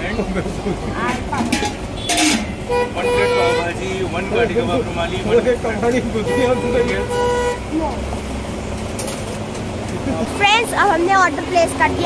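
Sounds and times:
voices: 0.0s - 8.3s, 9.7s - 12.0s
street traffic rumbling: 0.0s - 12.0s
vehicle horn: 1.9s - 4.2s, 6.2s - 7.8s.

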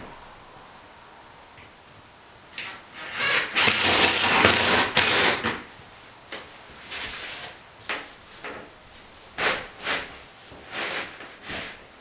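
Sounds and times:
cordless drill driving screw: 2.6s - 5.3s.

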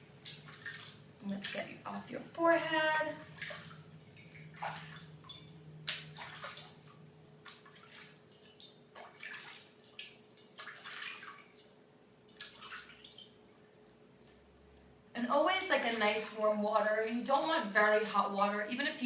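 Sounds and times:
water dripping into bowl: 2.7s - 15.0s
water splashing on face: 2.9s - 14.0s.

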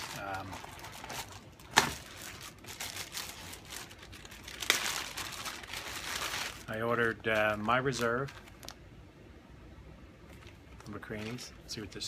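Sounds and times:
plastic bag crinkling: 0.0s - 8.8s, 10.3s - 11.7s.

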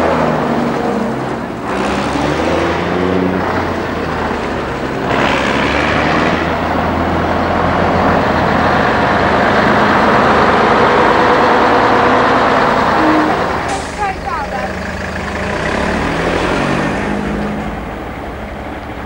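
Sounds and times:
truck engine running loudly: 0.0s - 19.0s.

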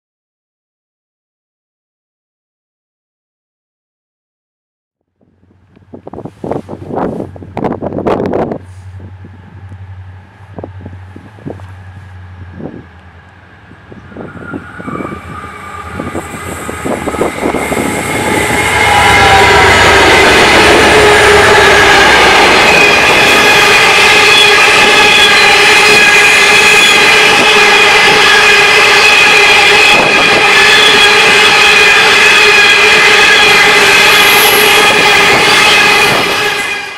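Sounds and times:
train rumbling past: 5.2s - 36.9s
metallic wheel squeal: 13.8s - 36.9s.

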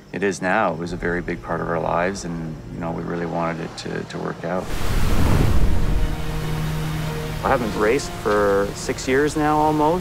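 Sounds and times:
background music: 0.0s - 10.0s
waterfall rushing: 4.6s - 9.8s.

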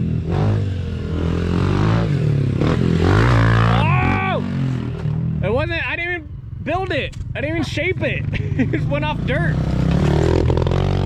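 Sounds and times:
small motorcycle engine revving: 0.0s - 5.1s, 8.9s - 11.0s
people shouting: 3.7s - 4.5s.

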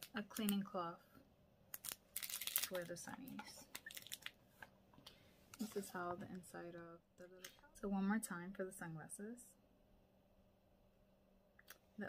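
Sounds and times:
plastic sleeve crinkling: 1.7s - 4.4s.

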